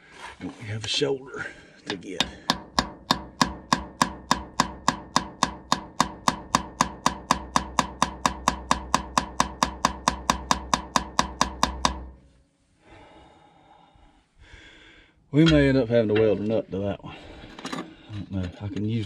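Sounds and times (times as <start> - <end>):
hammer tapping metal chisel: 1.8 - 12.2
faint handling noise: 17.4 - 19.0.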